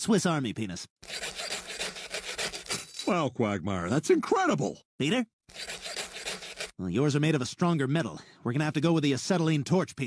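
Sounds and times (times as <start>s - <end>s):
small saw cutting metal chain: 1.0s - 3.1s, 5.5s - 6.8s.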